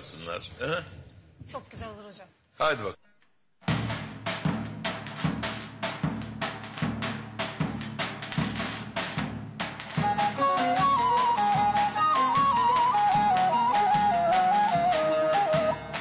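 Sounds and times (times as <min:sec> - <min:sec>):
drum beating steady rhythm: 0:03.6 - 0:16.0
flute-like wind instrument melody: 0:10.0 - 0:16.0.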